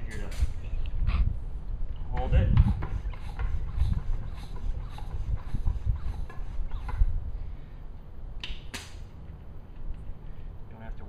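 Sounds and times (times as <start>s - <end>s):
bicycle pump strokes: 2.1s - 7.2s.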